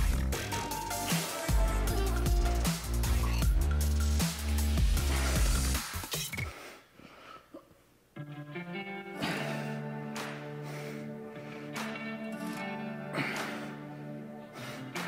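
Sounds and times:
electronic music with heavy bass: 0.0 - 6.4.

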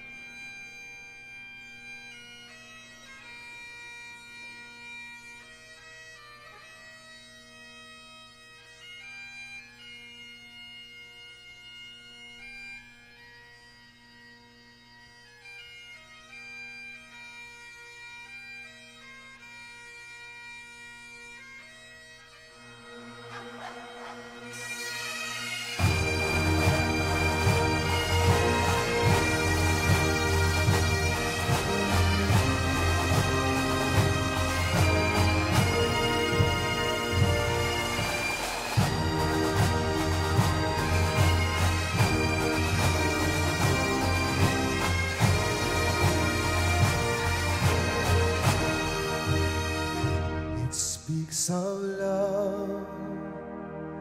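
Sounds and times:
bagpipe melody over drones: 0.0 - 50.7
massed pipes drums and band: 21.0 - 51.0.

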